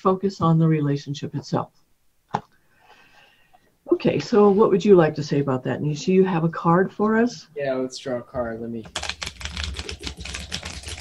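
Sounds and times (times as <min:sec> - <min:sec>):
playing cards being shuffled: 0:08.9 - 0:11.0.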